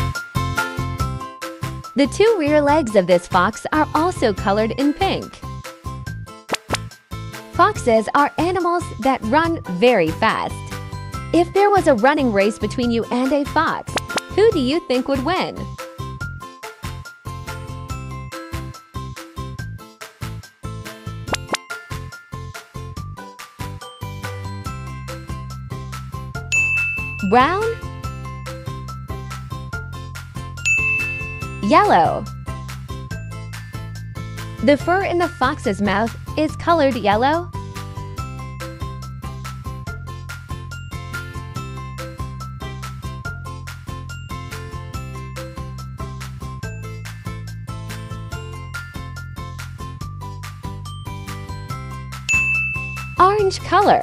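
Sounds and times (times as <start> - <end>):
tinkling children's music: 0.0 - 6.1, 7.0 - 54.0
high ding: 26.5 - 27.4, 30.7 - 31.8, 52.3 - 53.5
bright chime: 26.5 - 27.8, 30.6 - 32.2, 52.3 - 53.6.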